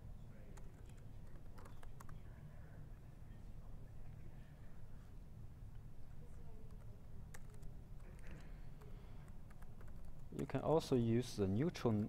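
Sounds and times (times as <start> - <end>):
laptop keyboard clicks: 6.7 - 10.5.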